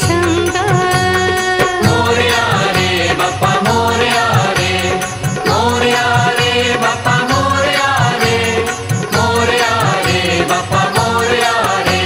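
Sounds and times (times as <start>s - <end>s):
devotional song with percussion: 0.0s - 12.0s.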